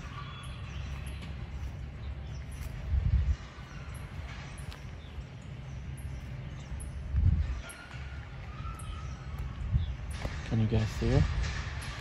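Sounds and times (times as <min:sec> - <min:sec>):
wind and handling rumble: 0:00.0 - 0:12.0.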